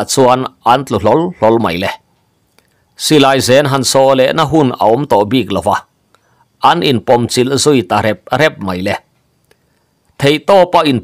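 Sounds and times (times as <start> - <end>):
man narrating: 0.0 - 2.1, 3.0 - 5.9, 6.6 - 9.1, 10.2 - 11.0.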